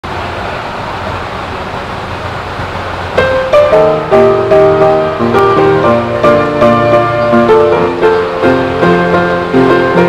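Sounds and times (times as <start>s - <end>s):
even hiss: 0.1s - 10.0s.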